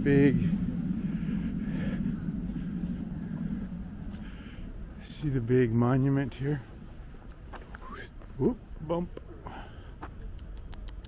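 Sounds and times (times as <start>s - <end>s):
road vehicle rumble: 0.0s - 11.0s.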